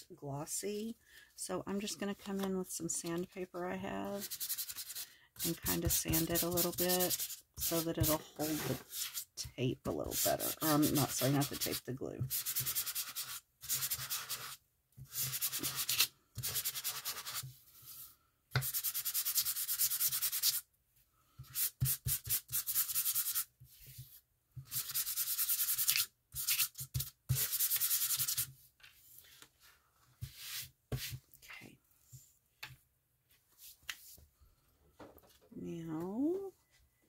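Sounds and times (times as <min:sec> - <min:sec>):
sandpaper rubbing on card: 0:04.2 - 0:09.3, 0:10.1 - 0:17.5, 0:18.6 - 0:20.6, 0:21.4 - 0:24.1, 0:24.7 - 0:28.5.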